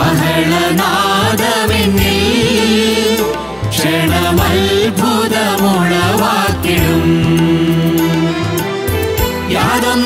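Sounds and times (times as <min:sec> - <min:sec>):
group singing worship song: 0:00.0 - 0:08.8, 0:09.5 - 0:10.0.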